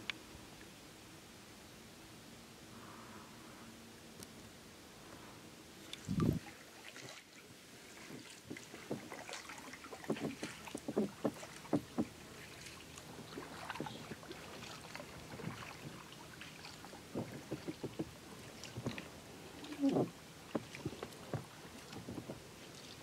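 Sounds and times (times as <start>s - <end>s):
kayak paddle strokes: 5.8s - 23.0s
water splashing and dripping: 5.9s - 23.0s.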